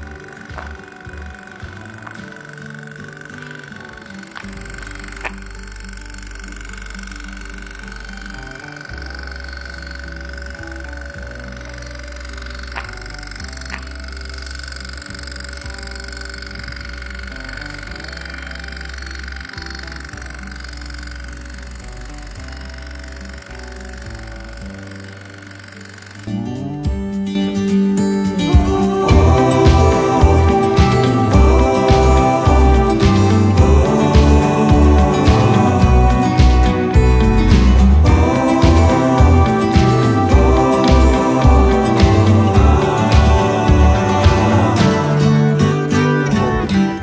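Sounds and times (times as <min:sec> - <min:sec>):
background music with bass line: 0:00.0 - 0:20.5, 0:26.3 - 0:47.0
electric bell ringing: 0:00.0 - 0:26.8, 0:27.6 - 0:47.0.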